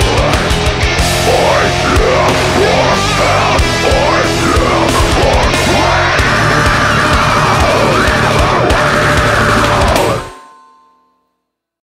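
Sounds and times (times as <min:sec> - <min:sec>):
heavy metal band final chord: 0:00.0 - 0:10.4.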